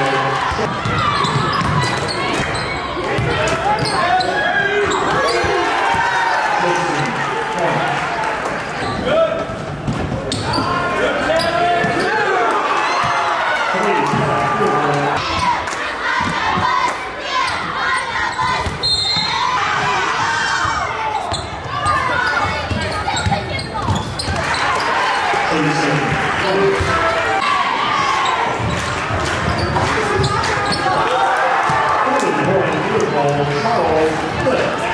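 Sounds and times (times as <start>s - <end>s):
basketball bouncing on wooden court: 0.5s - 4.0s, 18.5s - 19.9s, 21.3s - 24.6s, 28.5s - 30.9s
echoing voices: 13.5s - 34.9s.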